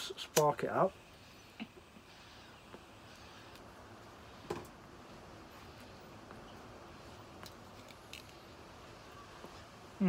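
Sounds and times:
soft hiss of pipe drawing: 1.0s - 9.7s.

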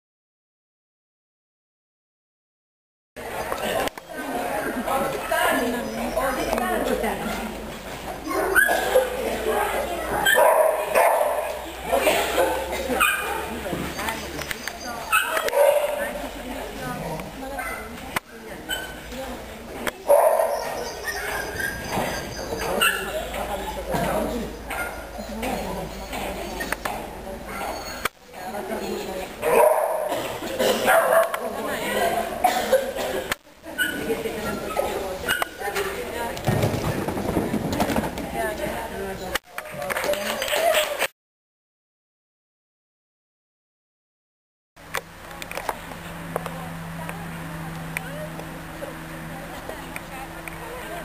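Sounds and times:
dog barking and yipping: 8.3s - 9.2s, 10.2s - 11.6s, 12.4s - 13.5s, 15.0s - 16.1s, 20.1s - 23.2s.

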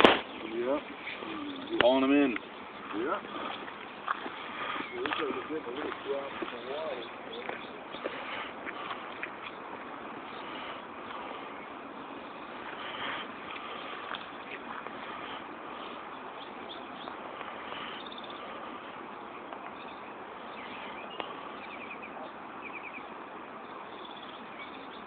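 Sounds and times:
small birds chirping: 0.0s - 25.0s
steady outdoor hiss: 0.0s - 25.0s.

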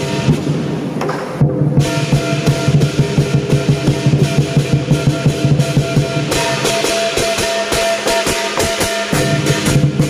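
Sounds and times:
clashing cymbals: 0.0s - 1.0s, 1.8s - 10.0s
large drum beats: 0.0s - 10.0s
ringing gong: 1.8s - 10.0s.

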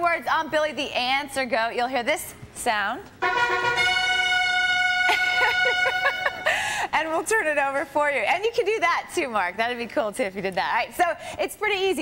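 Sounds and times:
held game show tone: 3.2s - 6.9s
laughter: 5.1s - 6.6s.

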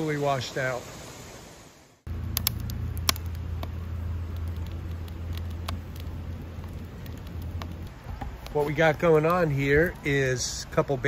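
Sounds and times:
campfire crackling: 2.0s - 11.0s
steady low hum: 2.1s - 8.8s.

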